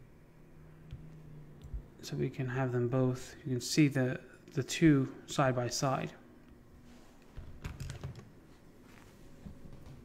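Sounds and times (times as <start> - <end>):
computer keyboard clicks: 7.6 - 8.3.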